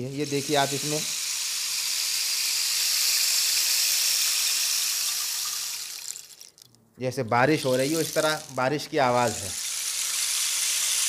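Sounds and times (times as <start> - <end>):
shells trickling in rainstick: 3.1 - 6.8, 7.5 - 11.0.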